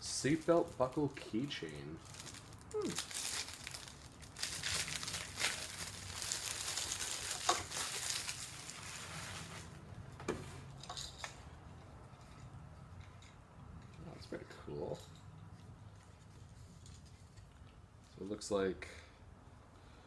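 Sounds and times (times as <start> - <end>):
plastic packaging crinkling: 0.0 - 9.8.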